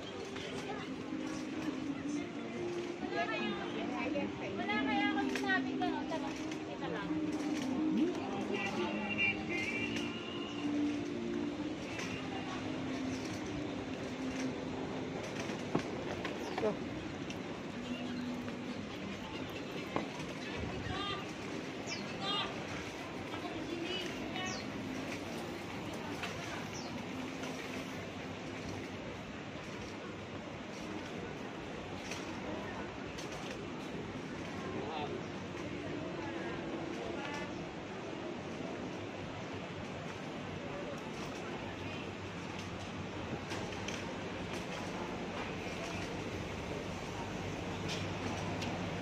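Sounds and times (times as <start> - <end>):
hum of street noise: 0.0 - 49.0
passers-by's voices: 0.0 - 49.0.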